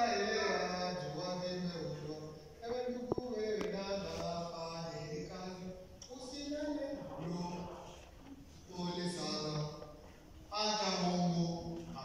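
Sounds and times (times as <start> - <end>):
man chanting a prayer: 0.0 - 8.0, 8.7 - 9.9, 10.5 - 12.0.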